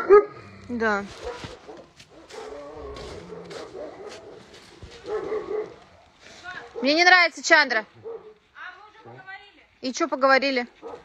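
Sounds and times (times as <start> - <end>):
dog barking: 0.0 - 0.4, 1.2 - 7.0, 8.0 - 8.4, 10.8 - 11.0.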